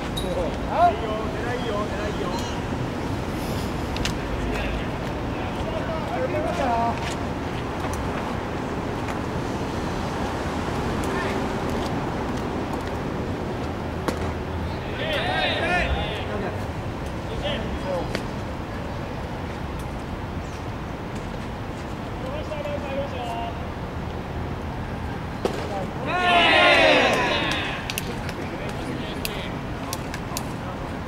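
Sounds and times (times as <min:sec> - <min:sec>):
players calling and shouting: 0:00.0 - 0:02.8, 0:04.1 - 0:07.0, 0:14.2 - 0:18.3, 0:25.2 - 0:31.0
outdoor background noise: 0:00.0 - 0:31.0
loud high-pitched shout: 0:26.0 - 0:27.9.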